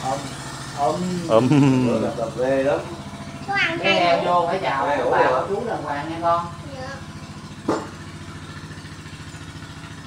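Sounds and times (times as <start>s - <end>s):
small engine idling: 0.0s - 10.0s.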